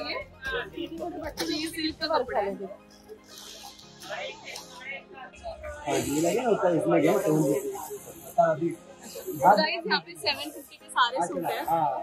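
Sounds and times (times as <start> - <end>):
people talking: 3.5 - 12.0.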